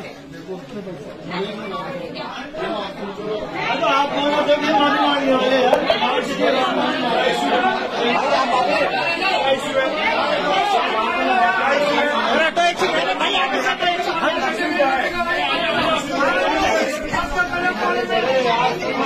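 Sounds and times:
crowd talking: 0:00.0 - 0:19.0.

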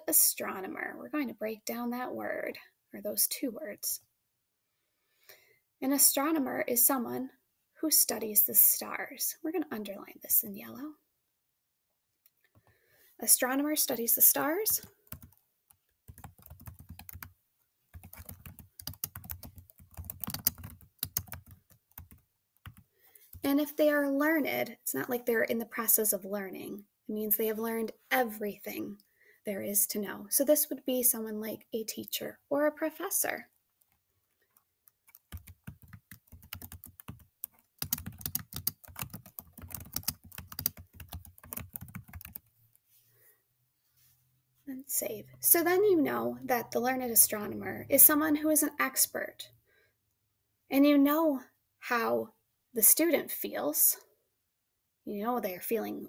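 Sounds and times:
typing on computer keyboard: 0:14.8 - 0:15.4, 0:16.1 - 0:17.3, 0:17.9 - 0:23.4, 0:34.9 - 0:42.5.

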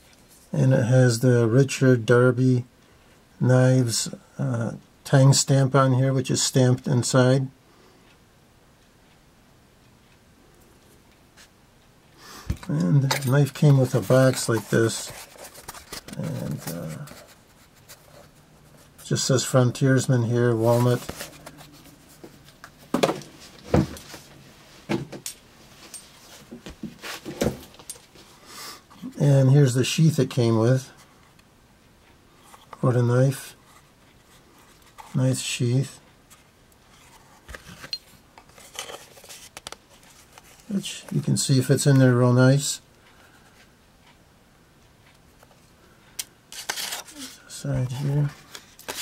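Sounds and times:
handling leather knife sheath: 0:12.6 - 0:18.3, 0:20.5 - 0:22.3
rustling and rubbing: 0:12.6 - 0:24.9, 0:25.6 - 0:28.3, 0:36.3 - 0:41.2
soft knocks and rustles: 0:20.6 - 0:28.2.

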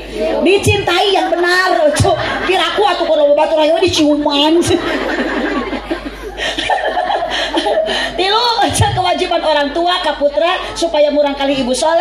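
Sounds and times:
audience laughing: 0:01.0 - 0:08.2.

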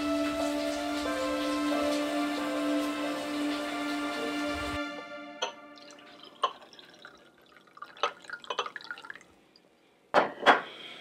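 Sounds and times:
liquid glugging into glass: 0:05.8 - 0:09.4.

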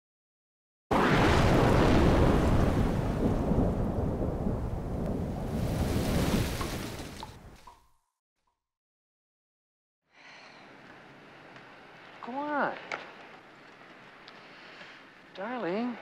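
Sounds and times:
deep rumble of thunder: 0:00.9 - 0:07.2
rain: 0:00.9 - 0:07.7, 0:10.5 - 0:16.0.

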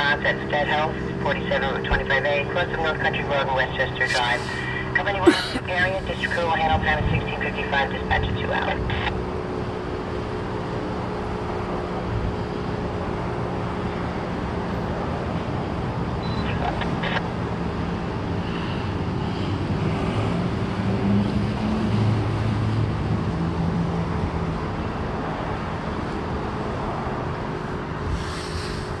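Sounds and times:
traffic rumble: 0:00.0 - 0:29.0.

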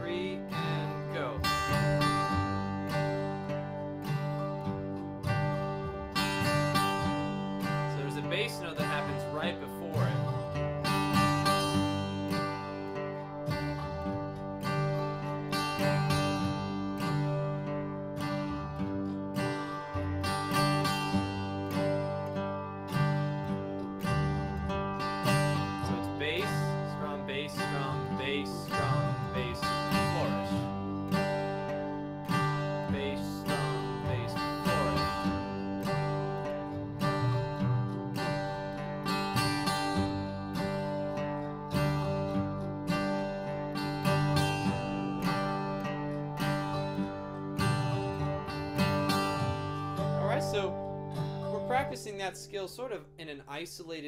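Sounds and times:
slowed guitar chord recording: 0:00.0 - 0:52.9
acoustic guitar strumming: 0:00.0 - 0:54.0.

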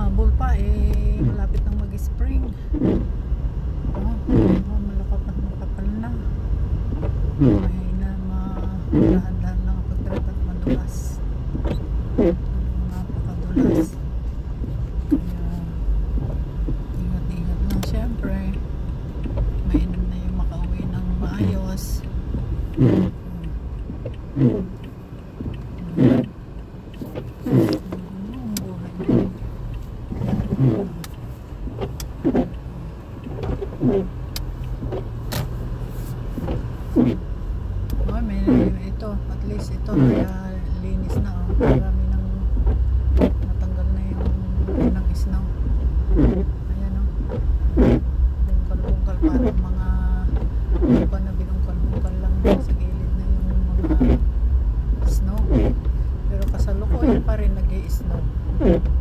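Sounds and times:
car engine and road noise: 0:00.0 - 0:59.0
windshield wipers sweeping: 0:00.0 - 0:59.0.

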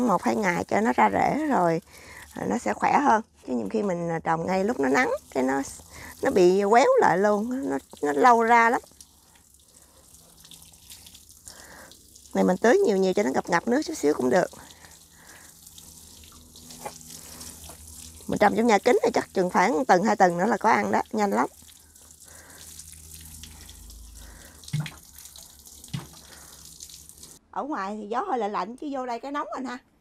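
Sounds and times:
water showering from watering can: 0:00.0 - 0:03.8, 0:04.4 - 0:27.4.

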